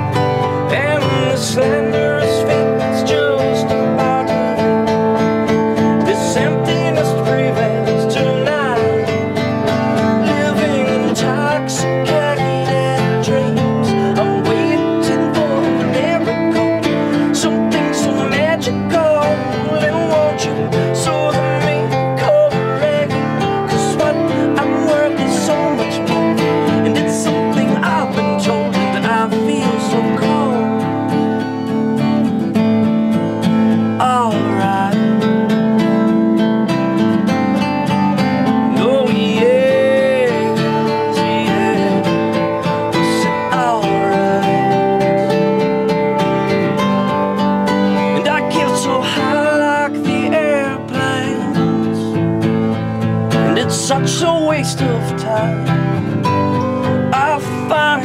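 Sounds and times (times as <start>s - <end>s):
strummed acoustic guitar: 0.0s - 58.0s.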